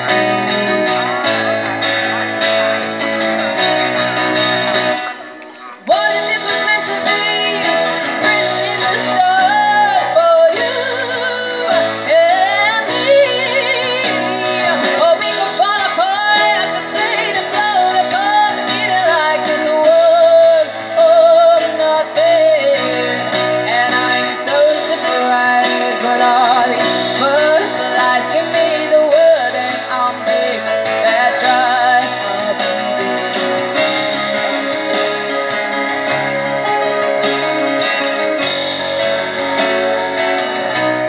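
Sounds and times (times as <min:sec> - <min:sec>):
live band playing: 0:00.0 - 0:41.0.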